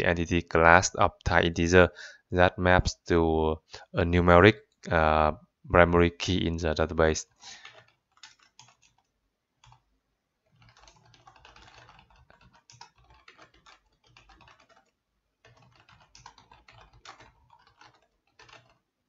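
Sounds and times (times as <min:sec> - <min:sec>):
computer keyboard typing: 0:07.5 - 0:18.9.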